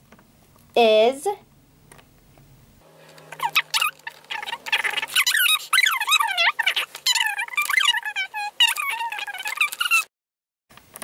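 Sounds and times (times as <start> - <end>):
very high-pitched voice talking: 3.4 - 10.1.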